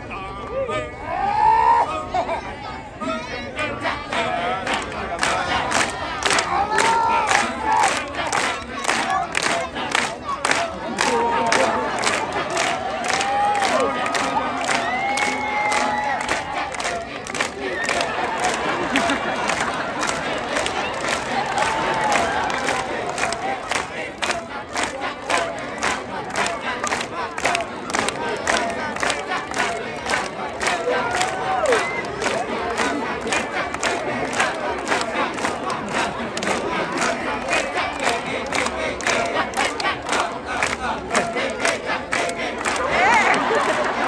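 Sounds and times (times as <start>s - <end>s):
men chanting in chorus: 3.0s - 44.0s.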